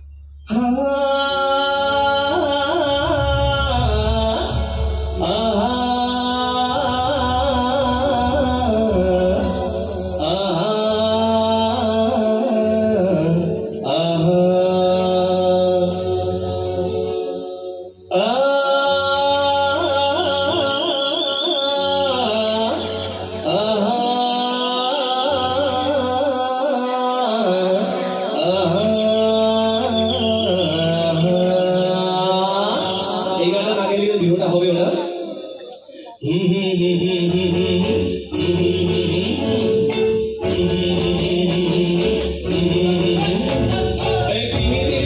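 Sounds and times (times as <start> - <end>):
live band sustaining: 0.0 - 45.0
man singing long note: 0.5 - 45.0
band accompaniment: 37.3 - 45.0.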